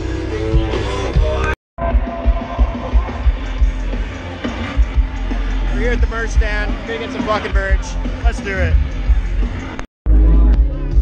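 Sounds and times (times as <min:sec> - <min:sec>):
festival music over loudspeakers: 0:00.0 - 0:11.0.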